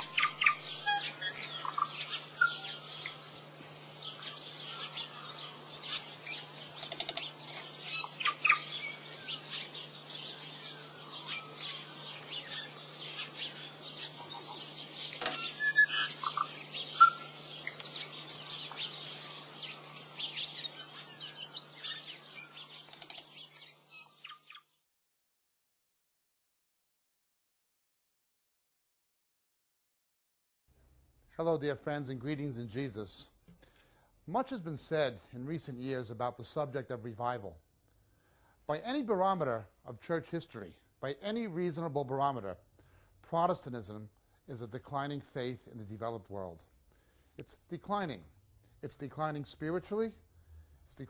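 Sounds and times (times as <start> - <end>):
birds chirping: 0.0 - 24.8.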